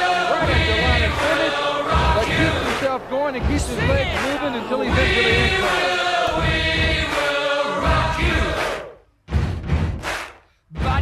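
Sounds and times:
group of voices singing: 0:00.0 - 0:02.9, 0:03.5 - 0:09.0
low pulsing beat: 0:00.3 - 0:07.2.

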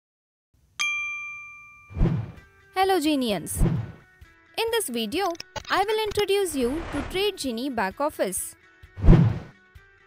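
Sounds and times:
bright ding: 0:00.8 - 0:02.0.

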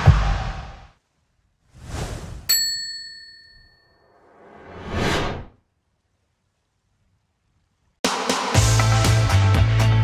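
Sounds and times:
whoosh: 0:01.7 - 0:02.5, 0:04.1 - 0:05.6
bright bell-like ding: 0:02.5 - 0:04.1.

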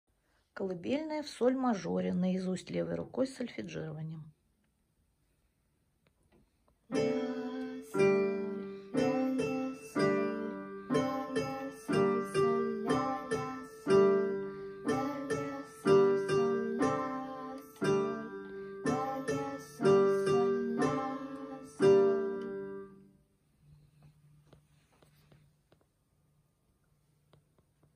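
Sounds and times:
slow lullaby on electronic keyboard: 0:06.9 - 0:23.1.

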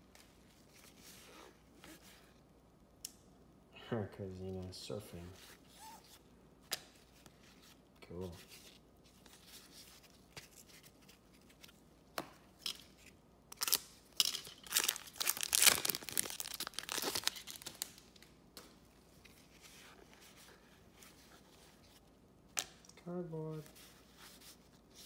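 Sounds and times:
foil wrapper tearing and crinkling: 0:13.5 - 0:18.1.

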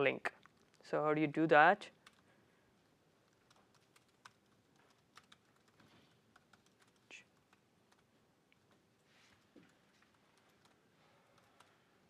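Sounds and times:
laptop keyboard keystrokes: 0:03.2 - 0:08.1, 0:10.1 - 0:11.8.

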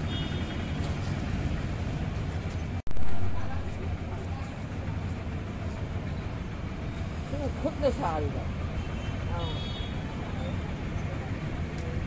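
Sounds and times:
street background rumble: 0:00.0 - 0:12.0.

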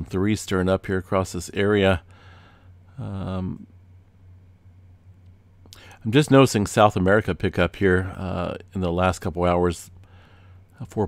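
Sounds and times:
person talking: 0:00.0 - 0:02.0
electrical hum: 0:00.0 - 0:11.0.

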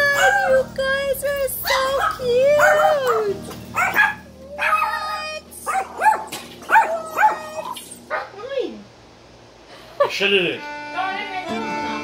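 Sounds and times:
dog yipping and barking: 0:00.0 - 0:00.7, 0:01.6 - 0:08.3
dog whining: 0:01.6 - 0:08.0.

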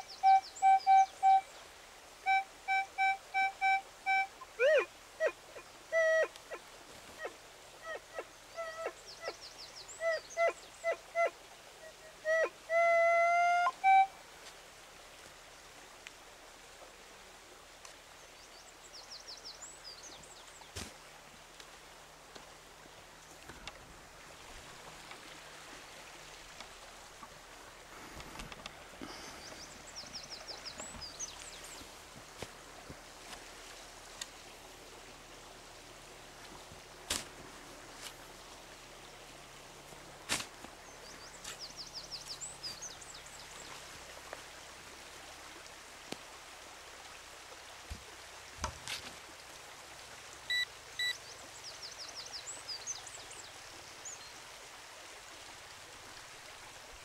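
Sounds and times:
bird chirps: 0:00.0 - 0:01.5, 0:50.5 - 0:51.2
faint outdoor ambience: 0:00.0 - 0:57.0
metal detector beeps and tones: 0:50.5 - 0:51.2.

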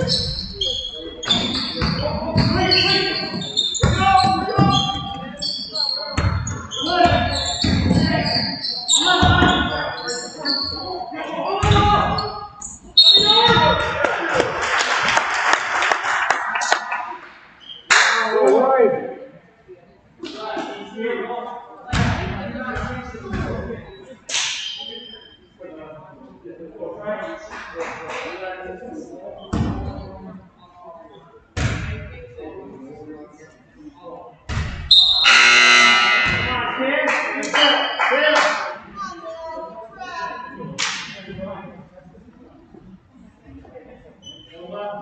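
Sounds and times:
sneakers squeaking: 0:00.0 - 0:14.0, 0:22.8 - 0:25.5, 0:29.4 - 0:30.3, 0:34.5 - 0:36.7, 0:44.2 - 0:44.6
basketball bouncing on wooden floor: 0:03.8 - 0:05.0.

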